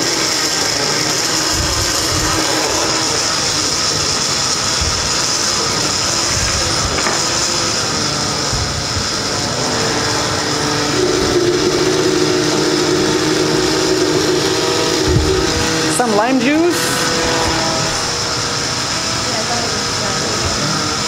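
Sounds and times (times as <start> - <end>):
blender running: 0.0 - 21.0
sliding pitched sound: 0.0 - 21.0.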